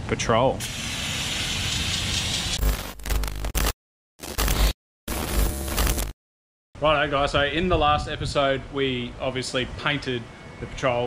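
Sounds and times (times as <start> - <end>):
glitchy static transition effect: 1.7 - 6.2.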